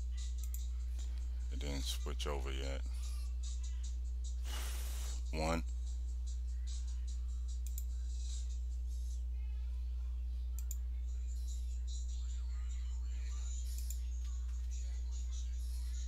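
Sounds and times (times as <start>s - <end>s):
low electrical hum: 0.0s - 16.0s
faint clicks: 7.6s - 7.9s.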